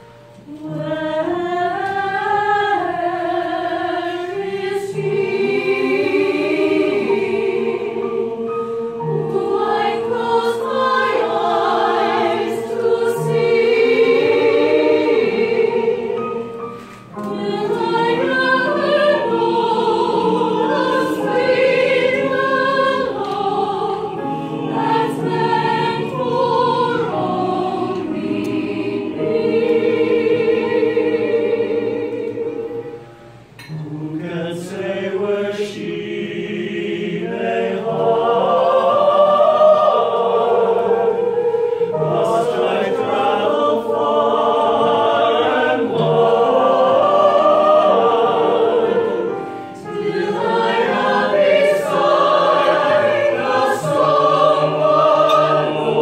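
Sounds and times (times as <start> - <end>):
mixed choir singing: 0.0 - 56.0.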